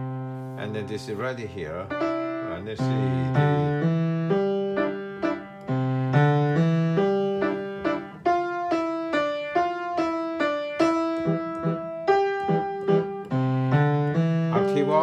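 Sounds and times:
piano piece: 0.0 - 15.0.

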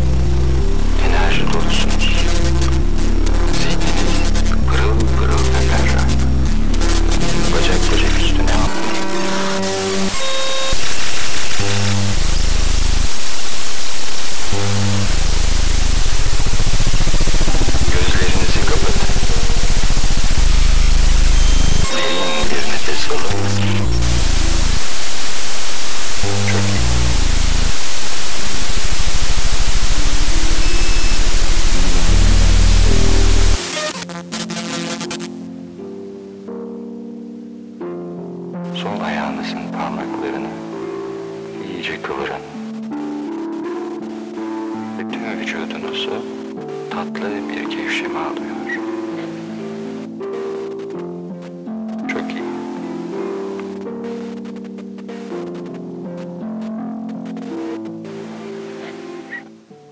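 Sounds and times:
blocky low bass tones: 0.0 - 35.4
static hiss noise music: 0.0 - 59.9.

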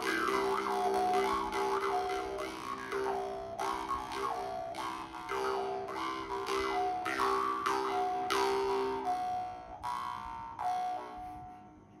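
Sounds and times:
jaw harps plucked: 0.0 - 11.7.

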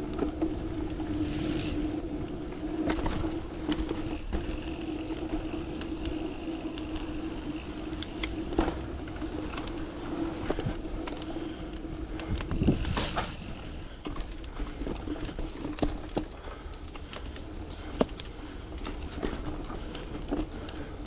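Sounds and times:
bike rattling over ground: 0.0 - 21.0
bike tyre and drivetrain hum: 0.0 - 21.0.

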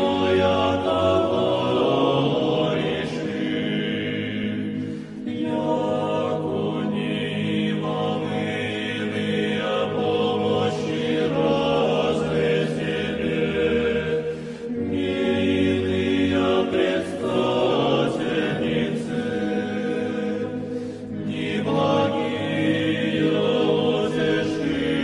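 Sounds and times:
voices chanting sustained notes: 0.0 - 25.0.

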